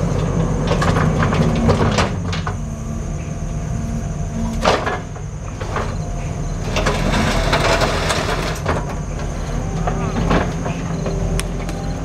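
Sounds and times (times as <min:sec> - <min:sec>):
tracks and bucket rattling: 0:00.0 - 0:03.6, 0:04.5 - 0:11.9
diesel engine running: 0:00.0 - 0:12.0.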